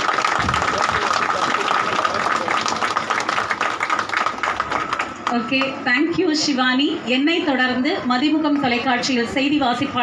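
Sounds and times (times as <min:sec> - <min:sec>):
people clapping: 0:00.0 - 0:05.8.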